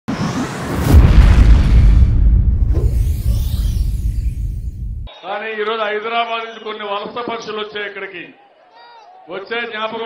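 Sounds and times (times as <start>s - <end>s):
rising noisy swell: 0.1s - 5.1s
deep boom with low rumble: 0.8s - 5.1s.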